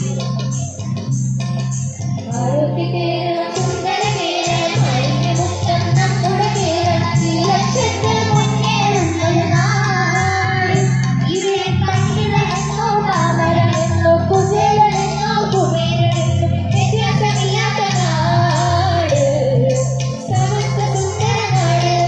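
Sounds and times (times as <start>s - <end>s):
backing music with steady beat: 0.0s - 22.0s
girls' choir singing: 2.4s - 18.9s, 20.3s - 22.0s.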